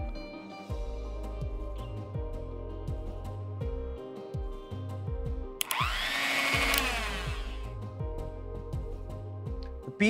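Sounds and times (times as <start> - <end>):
background music: 0.0 - 10.0
mixer grinder motor whine: 5.6 - 7.7.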